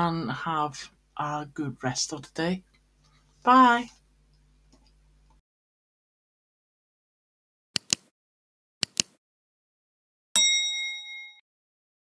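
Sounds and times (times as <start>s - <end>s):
notification bell ding: 10.4s - 11.4s.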